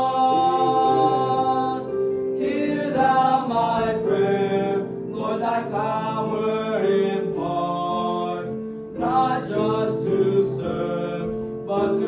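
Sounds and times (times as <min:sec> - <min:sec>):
boys singing a hymn in harmony: 0:00.0 - 0:12.0.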